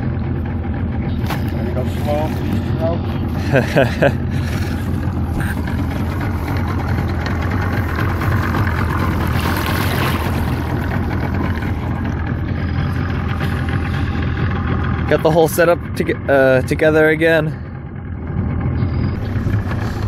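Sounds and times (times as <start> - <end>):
outboard motor droning: 0.0 - 20.0
water rushing along hull: 0.0 - 20.0.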